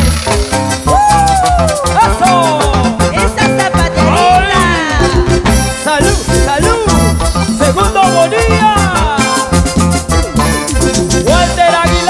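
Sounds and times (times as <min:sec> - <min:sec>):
live band playing dance music: 0:00.0 - 0:12.0.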